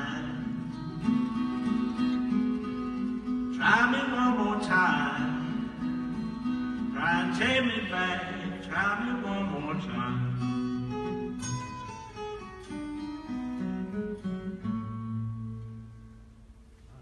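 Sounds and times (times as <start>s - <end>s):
acoustic blues guitar: 0.0s - 17.0s.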